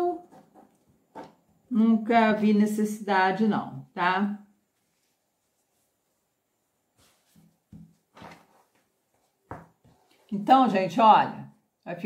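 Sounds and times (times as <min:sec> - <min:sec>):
fabric rustling: 0:04.7 - 0:10.4.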